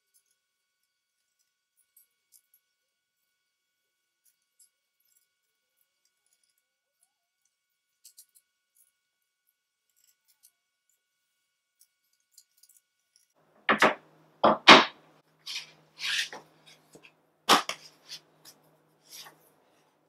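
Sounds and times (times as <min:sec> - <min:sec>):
board scraping and knocking on frame: 0:13.7 - 0:16.9.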